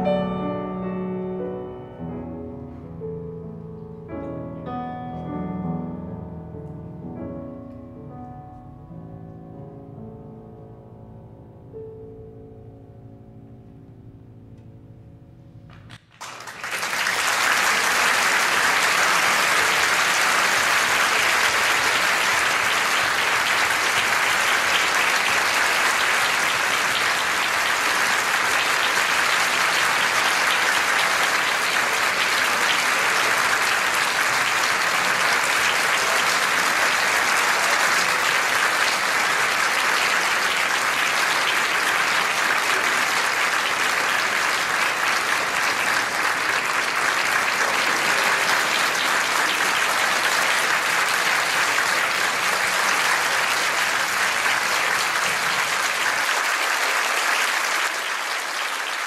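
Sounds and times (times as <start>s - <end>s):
audience applauding: 15.7s - 59.0s.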